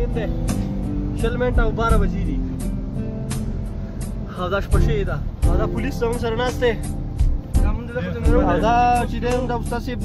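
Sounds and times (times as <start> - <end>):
song on car stereo: 0.0 - 10.0.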